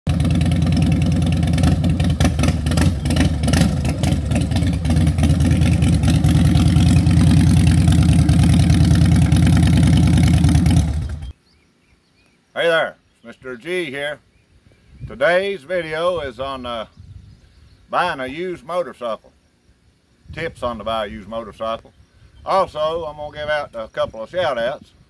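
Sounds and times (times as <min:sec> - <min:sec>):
motorcycle engine running: 0:00.1 - 0:11.3.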